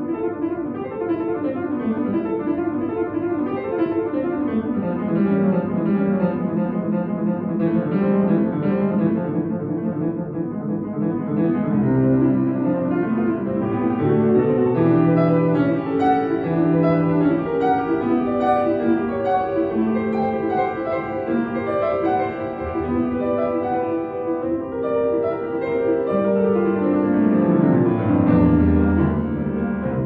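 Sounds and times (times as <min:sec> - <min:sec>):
fast classical piano passage: 0:00.0 - 0:30.0.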